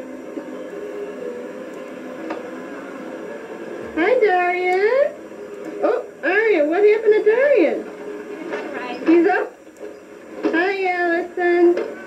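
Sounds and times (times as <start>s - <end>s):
videotape hiss: 0.0s - 12.0s.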